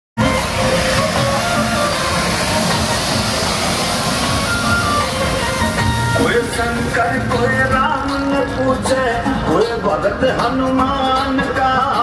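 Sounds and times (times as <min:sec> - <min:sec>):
fireworks hissing and crackling: 0:00.2 - 0:08.8
loud music: 0:00.2 - 0:12.0.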